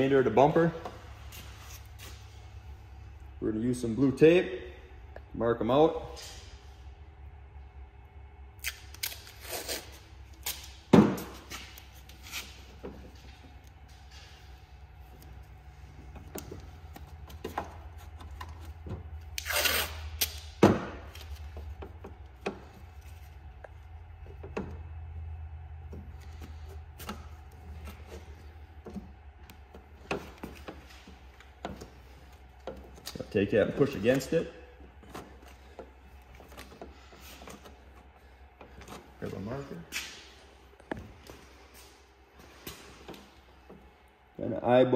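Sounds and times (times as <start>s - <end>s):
steady low hum: 0.0s - 44.9s
tape pulled and torn: 8.6s - 12.8s, 17.9s - 21.5s.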